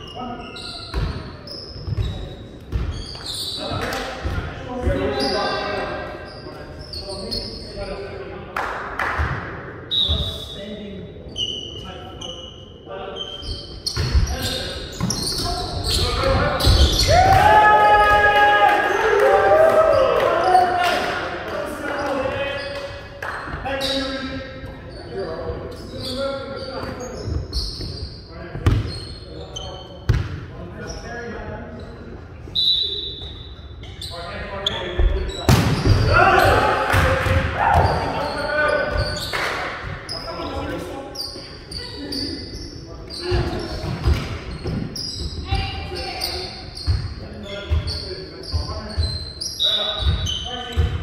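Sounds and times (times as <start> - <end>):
sneakers squeaking on wooden floor: 0.0 - 8.2, 9.9 - 17.7, 21.8 - 51.0
players shouting loudly: 17.0 - 21.2, 36.0 - 38.4
players calling out: 35.8 - 39.5.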